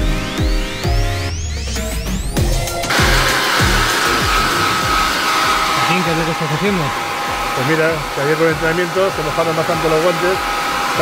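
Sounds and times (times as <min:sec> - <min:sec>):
background music with sliding bass: 0:00.0 - 0:11.0
hair dryer running: 0:02.4 - 0:11.0.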